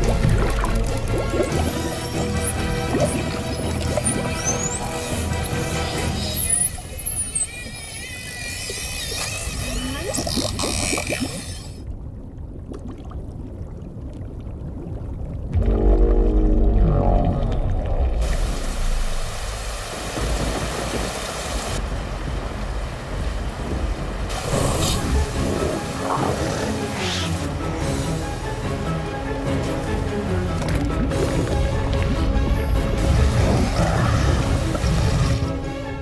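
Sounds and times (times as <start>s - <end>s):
muffled underwater rumble: 11.8s - 21.0s
deep swelling drone: 15.6s - 19.7s
rain falling on a lake: 18.4s - 24.5s.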